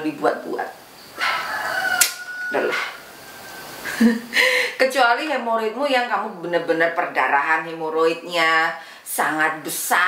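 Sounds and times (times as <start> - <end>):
rooster crowing: 1.1 - 4.0
sharp click: 2.0 - 2.2.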